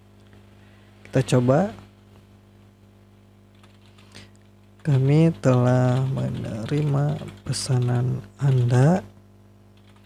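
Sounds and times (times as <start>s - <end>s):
low electrical hum: 0.0s - 10.0s
keyboard keys clicking: 5.5s - 8.8s.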